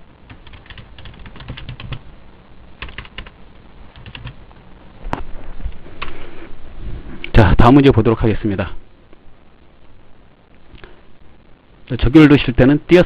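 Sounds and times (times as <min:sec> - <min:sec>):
typing on computer keyboard: 0:00.3 - 0:02.0, 0:02.8 - 0:03.3, 0:04.0 - 0:04.4.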